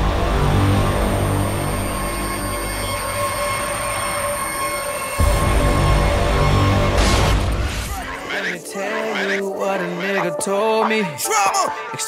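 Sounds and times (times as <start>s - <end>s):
shrill high tones: 1.2s - 7.0s.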